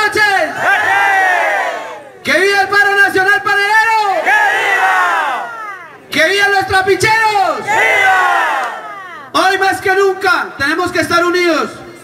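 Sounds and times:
man shouting into microphone: 0.0 - 1.3, 2.1 - 8.4, 9.3 - 11.8.

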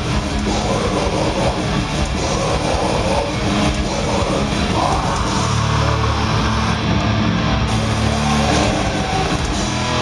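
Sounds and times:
fast dense drumming: 0.0 - 6.6, 7.7 - 10.0
heavily distorted guitars: 0.0 - 10.0.

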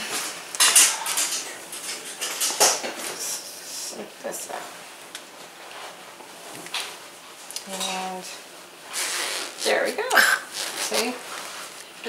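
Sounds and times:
zipper being pulled: 8.9 - 11.7
fabric rustling: 10.5 - 12.0.

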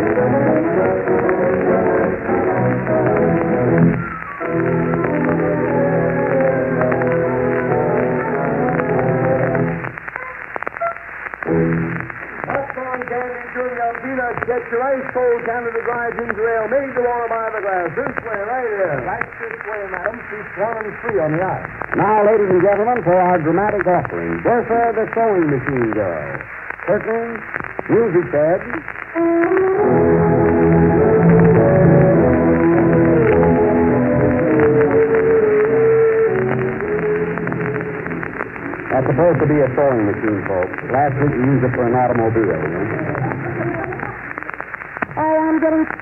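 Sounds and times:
old radio broadcast speech: 0.0 - 29.2, 32.1 - 46.0
orchestra playing held notes: 29.2 - 38.2.

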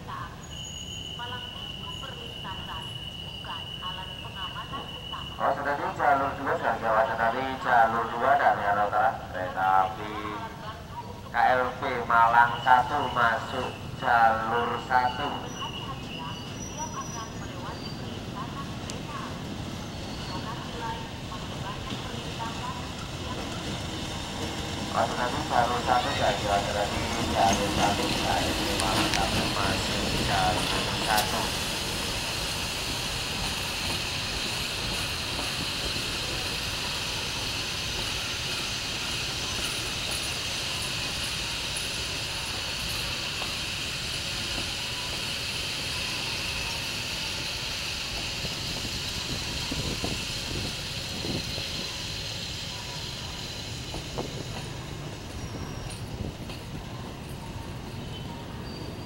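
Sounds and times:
train wheels rumbling on rails: 0.0 - 59.0
train knocks: 15.6 - 59.0
high hissing: 19.1 - 56.4.

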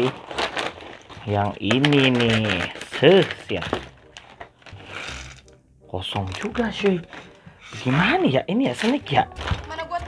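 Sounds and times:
foil bag rustling: 0.0 - 10.0.

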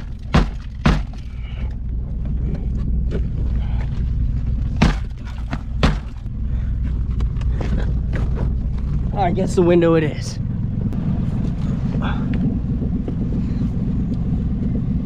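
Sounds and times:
steady low hum: 0.0 - 15.0
shoe kicking car door: 0.3 - 1.2, 4.8 - 6.2.

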